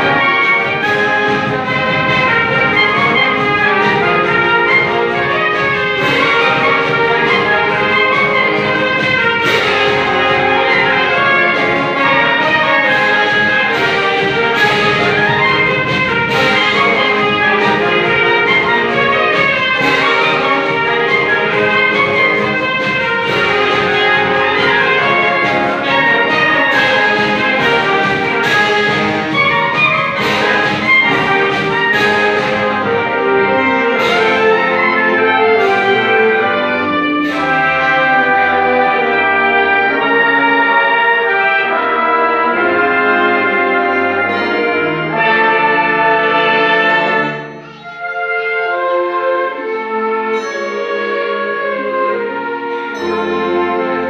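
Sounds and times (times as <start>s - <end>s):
concert wind band playing: 0.0s - 54.0s.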